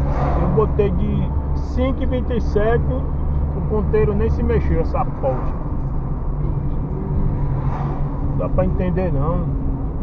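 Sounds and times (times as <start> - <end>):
car engine and tyres droning: 0.0 - 10.0.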